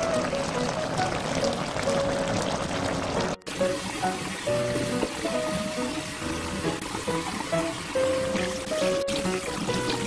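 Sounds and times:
background music: 0:00.0 - 0:10.0
stew bubbling in a pot: 0:00.0 - 0:10.0.

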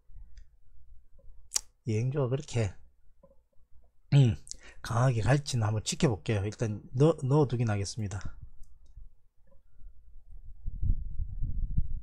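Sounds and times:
man speaking: 0:01.8 - 0:02.8, 0:04.1 - 0:08.4.

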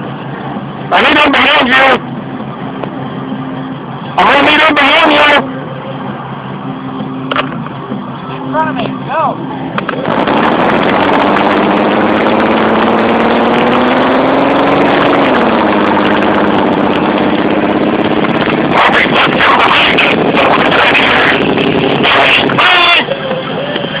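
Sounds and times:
car engine accelerating: 0:00.0 - 0:24.0
road and wind noise: 0:00.0 - 0:24.0
rough bursts of noise: 0:08.6 - 0:24.0.

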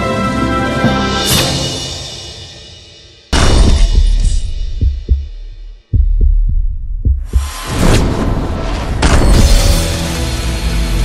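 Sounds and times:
deep bass thumps: 0:03.4 - 0:07.7
low rumble: 0:03.6 - 0:08.9.

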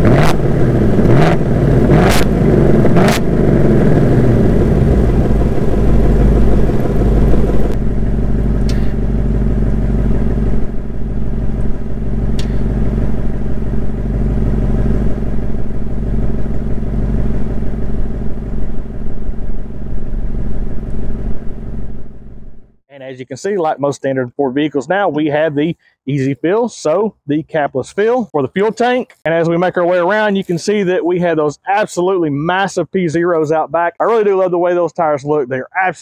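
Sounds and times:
sharp exhaust pops: 0:00.0 - 0:18.6
car engine revving down to idle: 0:00.0 - 0:19.2.

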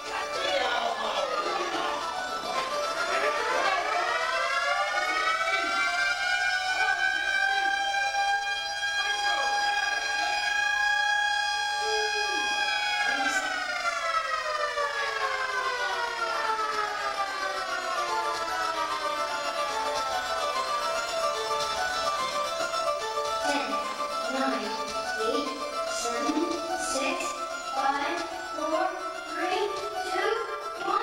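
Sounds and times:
electronic siren-like tone: 0:00.0 - 0:31.0.

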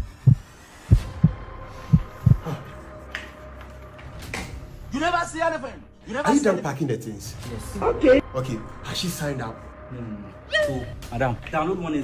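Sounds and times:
heartbeat thumps: 0:00.0 - 0:02.6.

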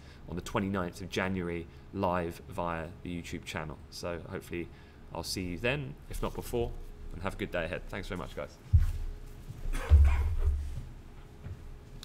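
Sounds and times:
heavy thud on microphone: 0:09.7 - 0:10.7
microphone handling noise: 0:09.7 - 0:11.0.

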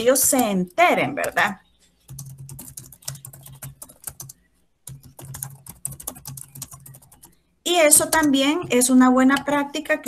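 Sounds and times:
computer keyboard typing: 0:00.0 - 0:09.6.

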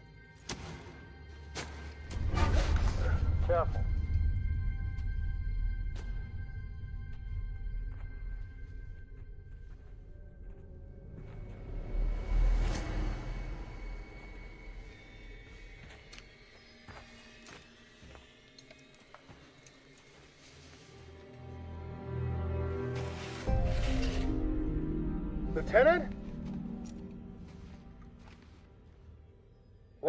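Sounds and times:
suspenseful film score: 0:00.0 - 0:30.0
deep rumbling rise: 0:10.3 - 0:15.7.

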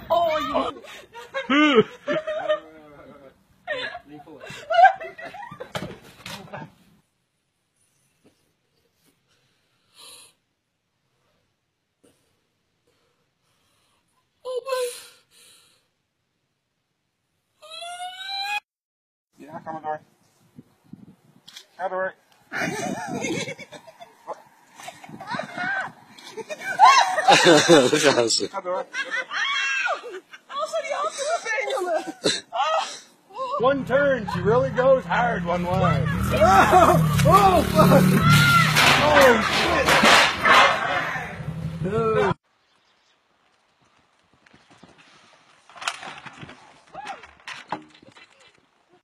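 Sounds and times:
person exclaiming: 0:35.7 - 0:39.4
sharp smack: 0:38.6 - 0:40.8.

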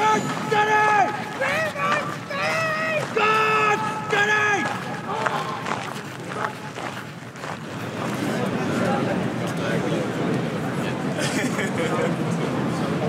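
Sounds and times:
man shouting military commands: 0:00.0 - 0:05.6
outdoor crowd noise: 0:00.0 - 0:13.0.

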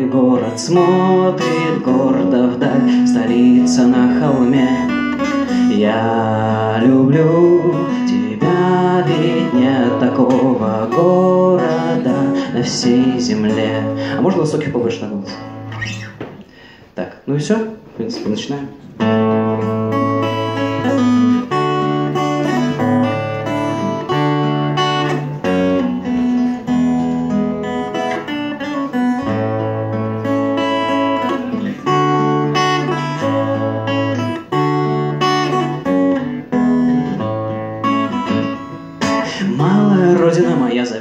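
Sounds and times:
amplified acoustic guitar strumming: 0:00.0 - 0:16.9, 0:18.1 - 0:41.0.

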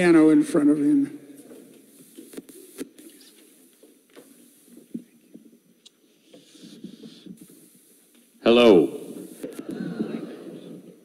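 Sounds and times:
faint hall room noise: 0:00.0 - 0:11.0.

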